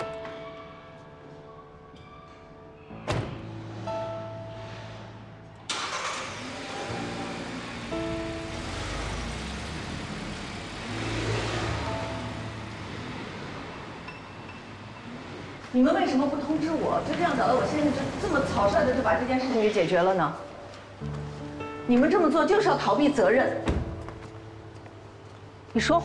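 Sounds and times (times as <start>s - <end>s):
background music with sustained notes: 0.0s - 26.0s
car door shutting: 3.0s - 3.4s
car engine starting and driving off: 5.7s - 15.7s.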